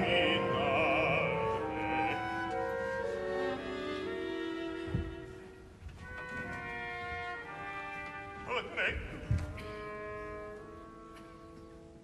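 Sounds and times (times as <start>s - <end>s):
orchestral brass and strings chords: 0.0s - 5.6s.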